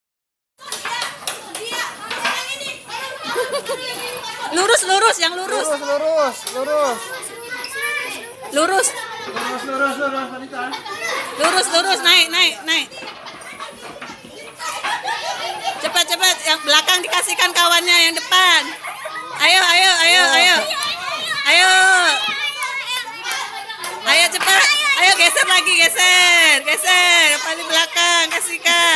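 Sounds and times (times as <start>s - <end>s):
children chattering and calling out: 0.6s - 28.9s.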